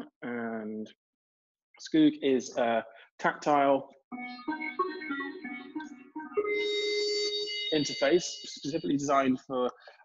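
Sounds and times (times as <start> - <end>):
synthesized organ-like notes: 4.1 - 9.3.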